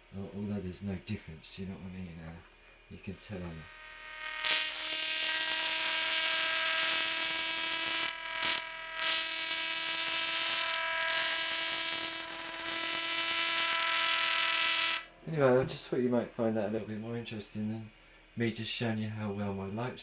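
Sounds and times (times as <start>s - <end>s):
tesla coil electric buzz: 0.0s - 15.6s.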